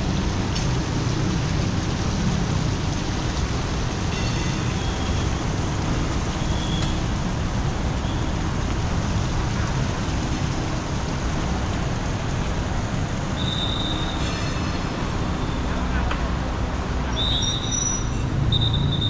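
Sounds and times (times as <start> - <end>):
city street traffic rumble: 0.0 - 19.0
short high squeal: 17.1 - 19.0.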